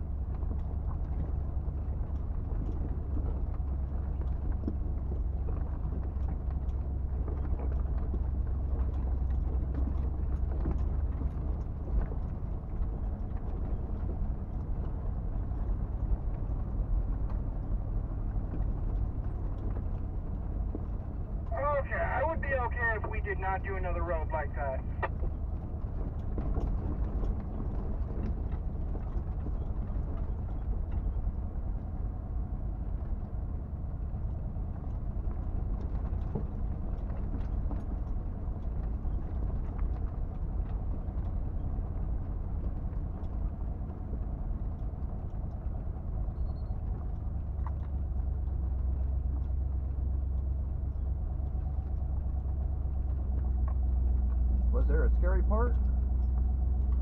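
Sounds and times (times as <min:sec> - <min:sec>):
engine and drivetrain rumble: 0:00.0 - 0:57.0.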